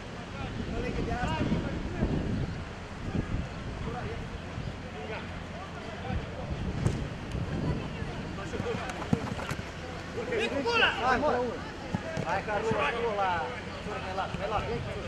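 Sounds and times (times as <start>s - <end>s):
ball kicks: 8.4s - 9.8s, 11.9s - 12.5s
players shouting: 8.4s - 14.6s.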